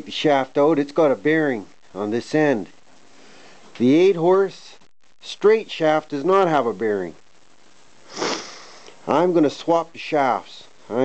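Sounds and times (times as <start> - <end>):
man sniffing: 8.0 - 9.0.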